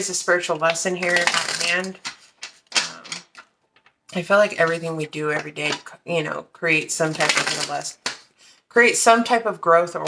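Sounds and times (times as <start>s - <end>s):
cards being riffle-shuffled: 1.0s - 3.5s, 7.1s - 8.3s.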